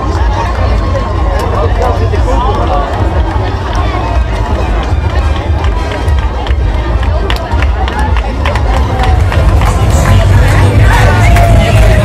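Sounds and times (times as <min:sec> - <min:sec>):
crowd chattering and calling out: 0:00.0 - 0:12.0
hand claps: 0:05.6 - 0:12.0.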